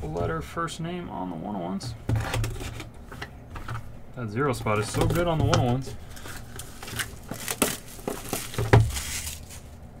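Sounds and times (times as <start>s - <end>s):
shrink-wrap crackling: 4.7s - 10.0s.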